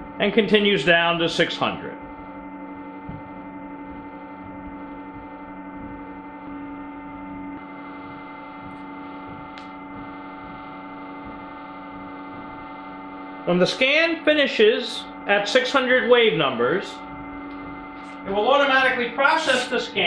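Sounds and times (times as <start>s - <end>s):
steady electrical hum: 0.0s - 20.0s.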